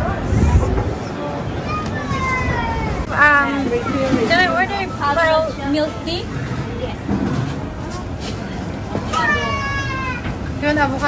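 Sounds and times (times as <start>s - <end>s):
busy shop counter noise: 0.0s - 11.0s.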